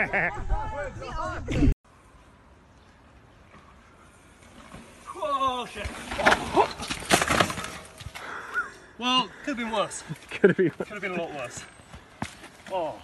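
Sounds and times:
bike crashing to the ground: 5.8 - 8.2.

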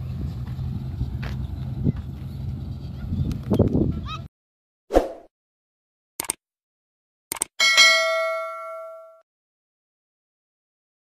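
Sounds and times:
notification bell ding: 7.6 - 9.2.

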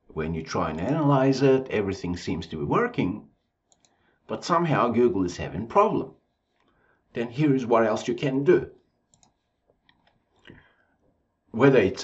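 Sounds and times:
faint computer mouse clicks: 3.7 - 4.0, 9.1 - 10.7.

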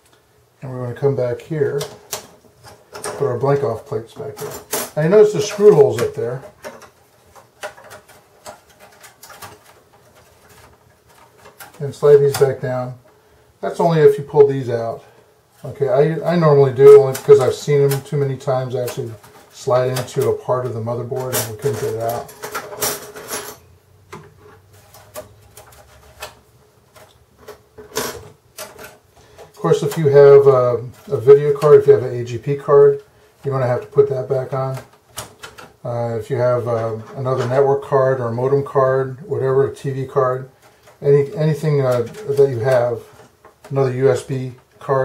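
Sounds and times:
metal plates clicking and scraping: 1.7 - 12.8, 16.5 - 35.8.

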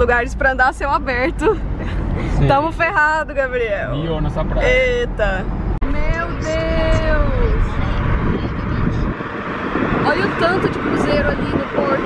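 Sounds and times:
car road and wind noise: 0.0 - 12.0
low rumble: 0.0 - 12.0.

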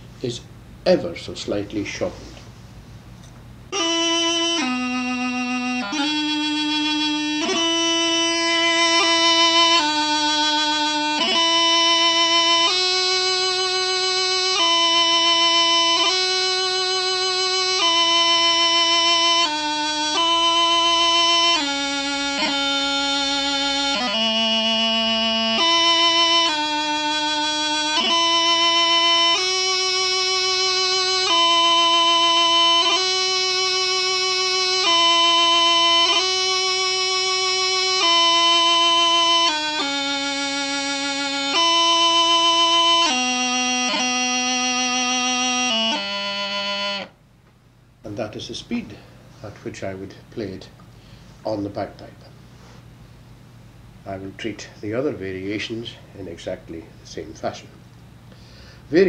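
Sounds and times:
bagpipe practice chanter melody: 0.0 - 47.2, 48.0 - 59.0.

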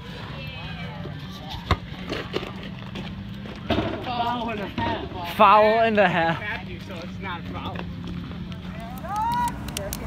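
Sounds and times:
faint voices talking outdoors: 0.0 - 10.0.

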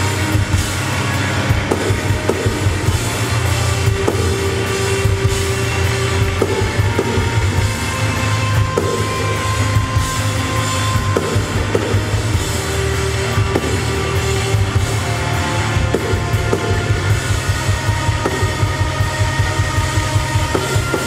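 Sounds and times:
bass guitar: 0.0 - 21.0
distorted electric guitar: 0.0 - 21.0
pounding drum kit with cymbals: 0.0 - 21.0.

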